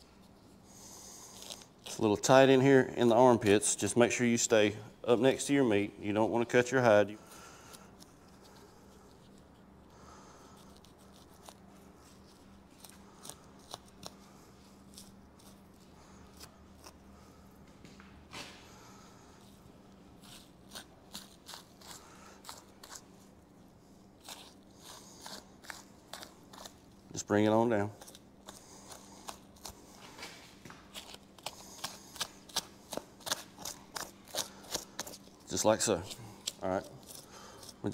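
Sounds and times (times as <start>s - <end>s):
knife cutting tissue: 0.1s - 2.6s, 7.2s - 17.2s, 18.7s - 23.4s, 24.0s - 27.2s, 28.0s - 37.9s.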